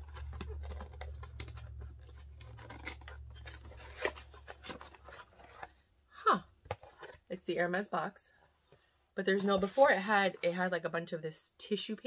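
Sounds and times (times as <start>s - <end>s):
paper rustling and scraping: 0.0s - 5.8s, 9.3s - 10.7s.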